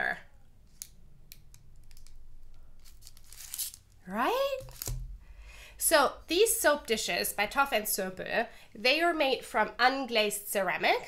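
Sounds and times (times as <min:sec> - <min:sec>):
paper packaging crinkling: 0:01.9 - 0:04.0.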